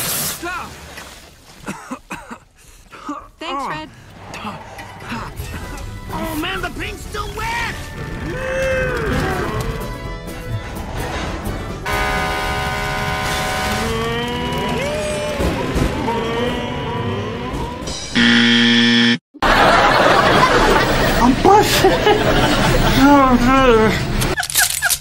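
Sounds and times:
soundtrack music: 4.2 - 18.4
loud buzzer tone: 11.8 - 14.7, 17.9 - 19.2
cartoon character voices: 13.8 - 17.9.

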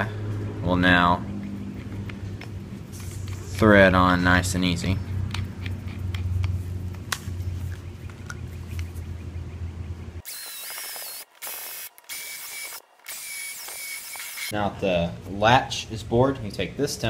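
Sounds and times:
steady low hum: 0.0 - 17.0
cordless drill whining: 10.3 - 14.5.

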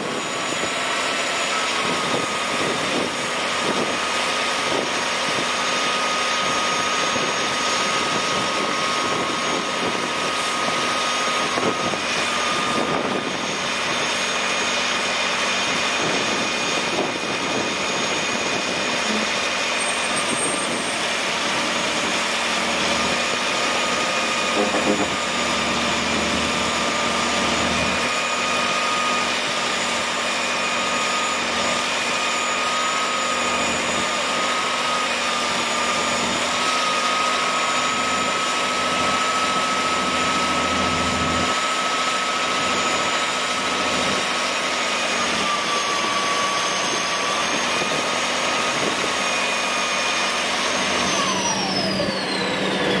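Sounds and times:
diesel engine running: 0.0 - 53.0
high-pitched whines: 0.0 - 53.0.

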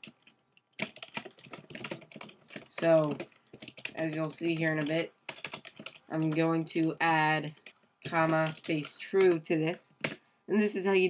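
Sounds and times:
computer keyboard typing: 0.0 - 10.8.

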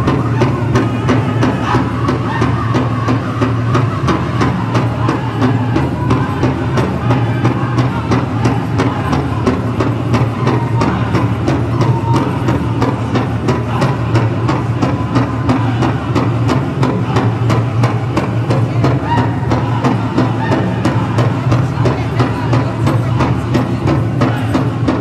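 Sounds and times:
bass drum pounding: 0.0 - 25.0
group singing high wavering voices: 0.0 - 25.0.

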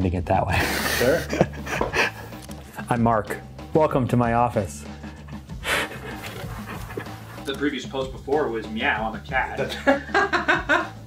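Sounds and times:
man laughing under his breath: 0.5 - 2.4, 5.0 - 7.5, 9.7 - 11.0.

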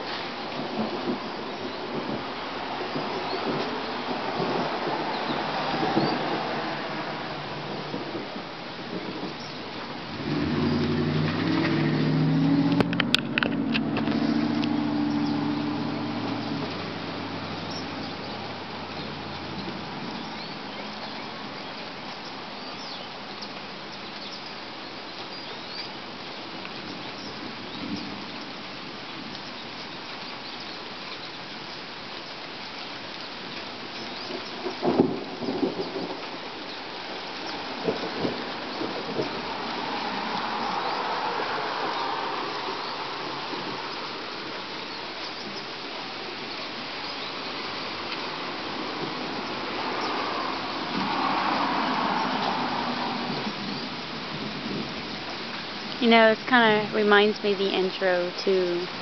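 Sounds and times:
car tyres swishing on wet road: 0.0 - 59.0
steady rain falling: 0.0 - 59.0
thunder cracking: 0.1 - 19.9, 34.6 - 36.6, 37.4 - 43.8.

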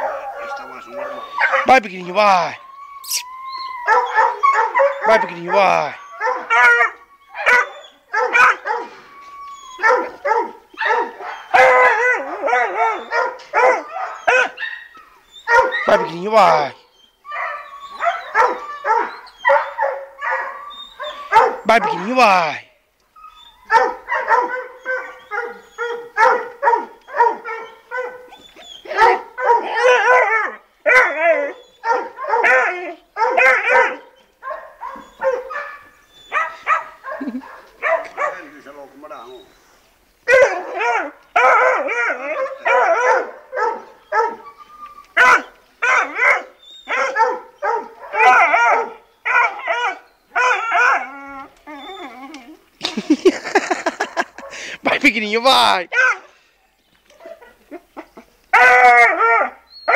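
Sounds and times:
puppy yapping: 0.0 - 1.7, 3.0 - 16.7, 17.3 - 22.2, 23.2 - 39.5, 40.3 - 52.6, 57.2 - 59.9.

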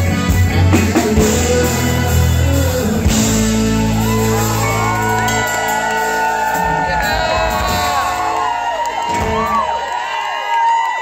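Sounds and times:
live band holding a chord: 0.0 - 9.7
crowd shouting and whooping: 2.8 - 11.0.

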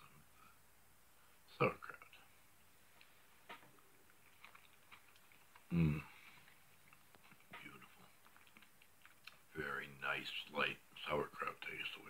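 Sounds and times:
man speaking indistinctly: 1.5 - 2.2, 9.5 - 12.0
chewing: 3.0 - 9.5.

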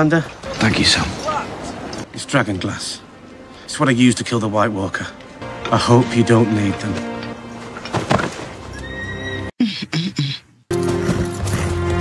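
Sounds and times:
background music: 0.7 - 9.5, 10.7 - 12.0.

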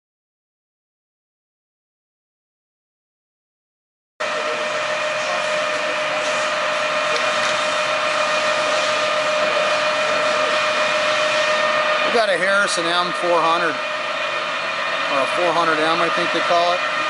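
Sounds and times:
lathe running with mechanical whine: 4.2 - 17.0.

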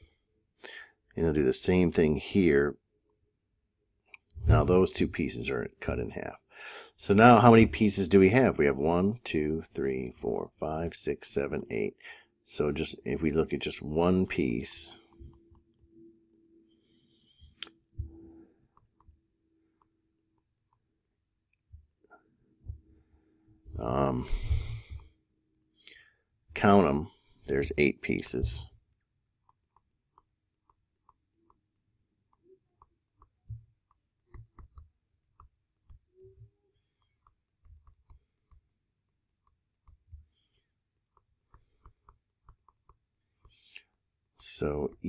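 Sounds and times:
stylus tapping on tablet: 32.8 - 36.0.

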